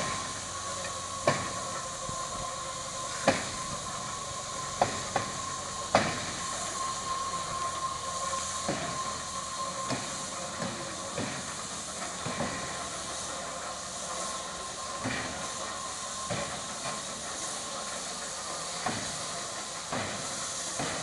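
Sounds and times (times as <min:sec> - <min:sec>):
steady high tone: 0:00.0 - 0:11.2
steam locomotive hissing steam: 0:00.0 - 0:21.0.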